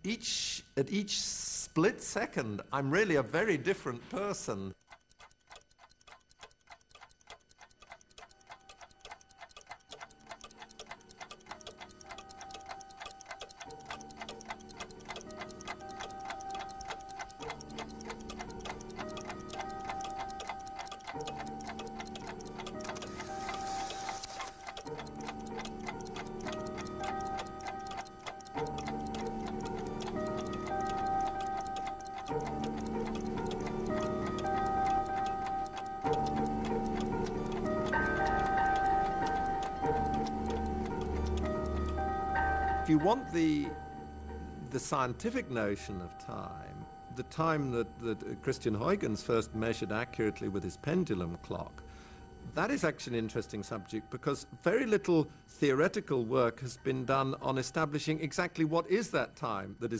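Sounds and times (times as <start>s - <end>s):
rapid clock ticking: 1.2s - 59.9s
soundtrack music of held notes: 7.9s - 54.0s.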